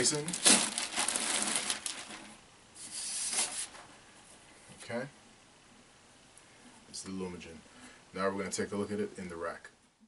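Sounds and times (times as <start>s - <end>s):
plastic bag crinkling: 0.0s - 2.4s.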